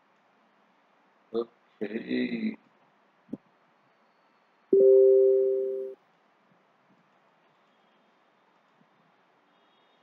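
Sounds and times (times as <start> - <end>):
two-note electronic alert chime: 4.8 - 6.0.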